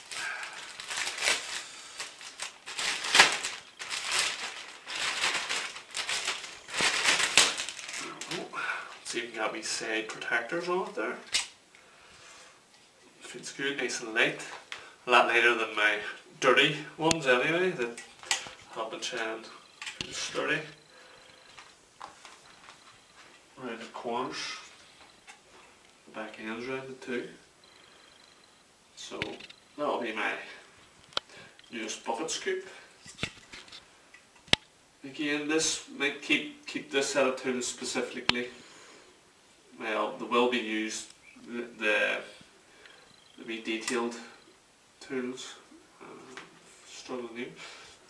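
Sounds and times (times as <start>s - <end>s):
faint packaging rustling: 0.0s - 11.6s, 17.1s - 26.1s.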